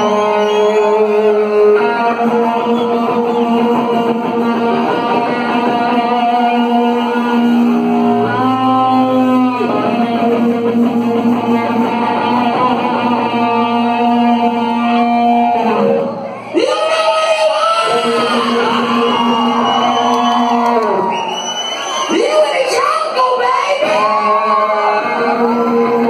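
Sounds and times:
electric guitar held notes: 0:00.0 - 0:16.4
live rock band playing: 0:00.0 - 0:21.1.

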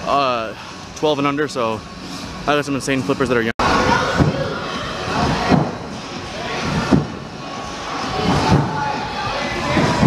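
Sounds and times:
steady background din: 0:00.0 - 0:10.0
trampoline bed thumping: 0:05.2 - 0:06.0, 0:06.6 - 0:07.3.

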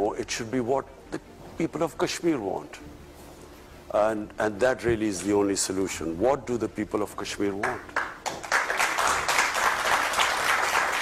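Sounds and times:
audience applauding: 0:07.6 - 0:11.0.

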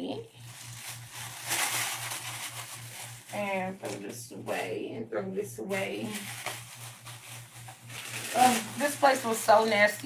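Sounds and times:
steady low hum: 0:00.0 - 0:10.0
faint rustling and handling: 0:00.4 - 0:04.0, 0:06.0 - 0:10.0.

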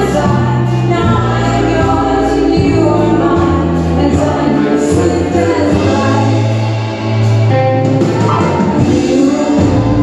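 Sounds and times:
voices singing together: 0:00.0 - 0:07.5, 0:08.4 - 0:10.0
bass notes: 0:00.0 - 0:10.0
guitar: 0:00.0 - 0:10.0.

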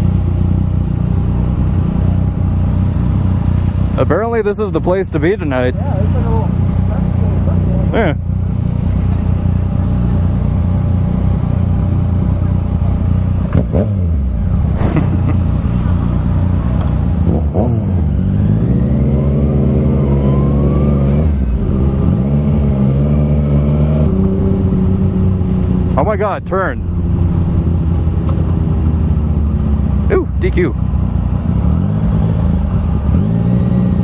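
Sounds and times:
motorcycle engine revving: 0:00.0 - 0:34.0.

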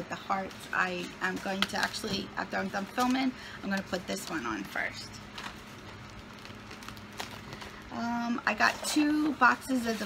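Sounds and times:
electric fan humming: 0:00.0 - 0:10.0.

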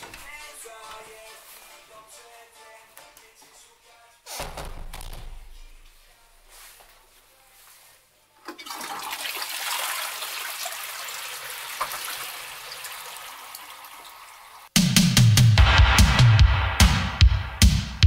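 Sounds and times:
music with heavy bass beat: 0:14.8 - 0:18.0.

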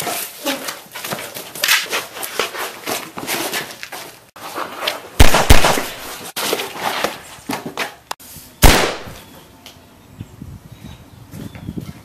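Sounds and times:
knocks and scuffling: 0:00.0 - 0:08.2.

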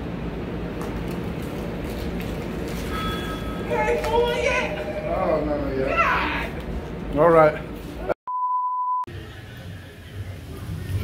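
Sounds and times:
shop background rumble and hiss: 0:00.0 - 0:08.2, 0:09.1 - 0:11.0.

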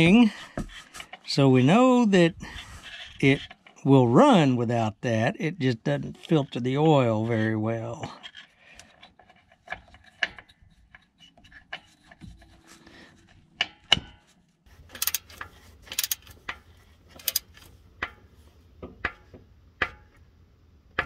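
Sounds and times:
metal parts clicking and scraping: 0:14.8 - 0:18.2
socket ratchet clicking: 0:14.9 - 0:16.6, 0:17.2 - 0:17.6.

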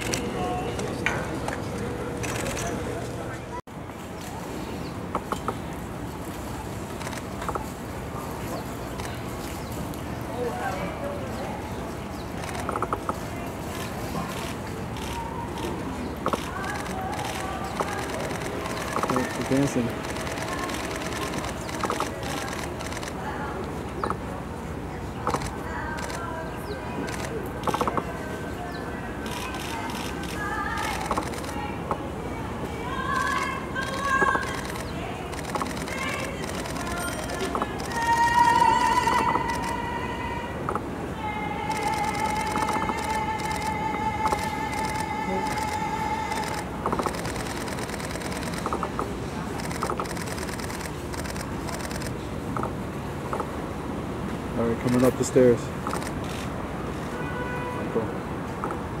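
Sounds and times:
outdoor background noise: 0:00.0 - 0:59.0
street background noise: 0:00.0 - 0:59.0
camera shutter clicks: 0:29.2 - 0:31.6, 0:33.2 - 0:39.8, 0:41.7 - 0:49.0.

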